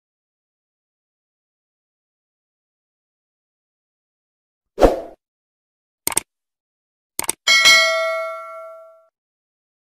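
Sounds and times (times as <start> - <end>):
quick clicks: 6.1 - 6.3, 7.2 - 7.4
bell ding: 7.5 - 9.1.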